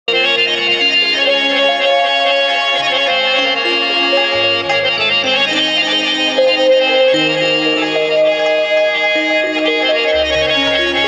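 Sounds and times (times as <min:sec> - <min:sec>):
harmonium melody: 0:00.1 - 0:11.0.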